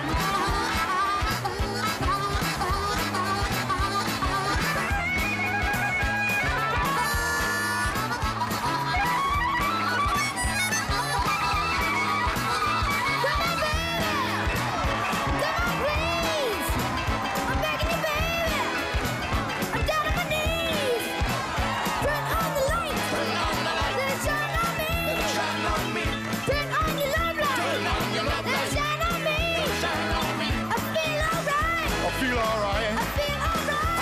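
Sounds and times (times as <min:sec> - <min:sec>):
harmonica leads: 0:00.0 - 0:34.0
rhythm and blues band playing: 0:00.0 - 0:34.0.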